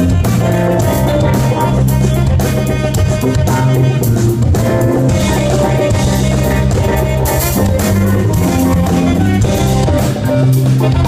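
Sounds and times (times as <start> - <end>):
live band playing: 0.0 - 11.0
saxophone solo: 0.0 - 11.0.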